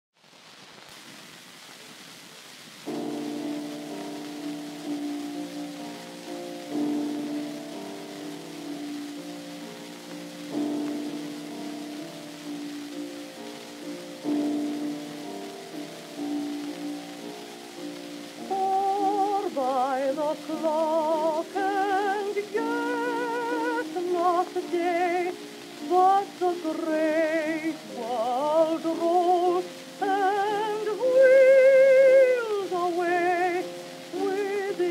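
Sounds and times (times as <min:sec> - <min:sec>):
record surface hiss: 0:00.1 - 0:34.9
piano chords on old record: 0:00.3 - 0:34.9
contralto voice singing with vibrato: 0:13.9 - 0:34.9.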